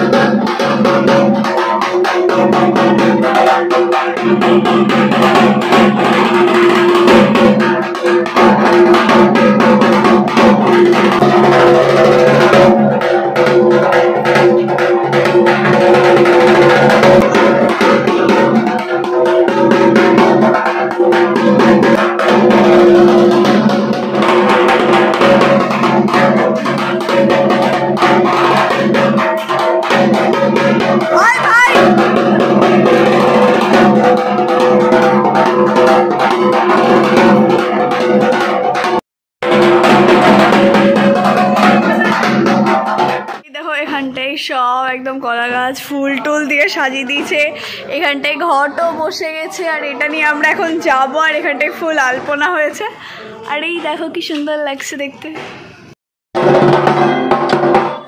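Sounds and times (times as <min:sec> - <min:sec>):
barrel drum beaten rapidly: 0:00.0 - 0:43.9, 0:56.4 - 0:58.0.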